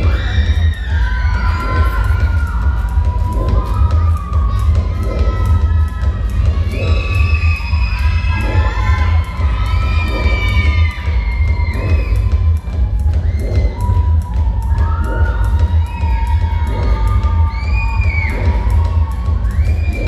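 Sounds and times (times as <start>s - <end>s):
crowd cheering and shouting: 0.0s - 20.0s
dance music with heavy bass beat: 0.0s - 20.0s.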